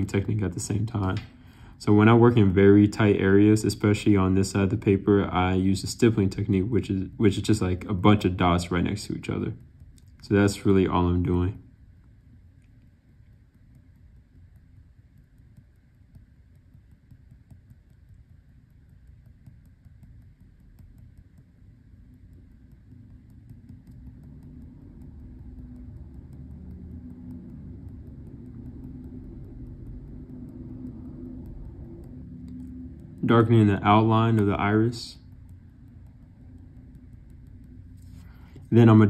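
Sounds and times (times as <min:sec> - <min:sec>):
pen tapping and scratching on paper: 0:02.3 - 0:11.4, 0:12.0 - 0:39.0
low rumble: 0:22.5 - 0:39.0.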